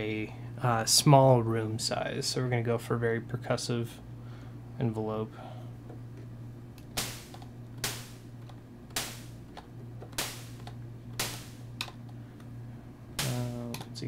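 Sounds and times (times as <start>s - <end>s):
steady low hum: 0.0s - 14.0s
sharp white-noise bursts: 6.9s - 12.0s, 13.0s - 14.0s.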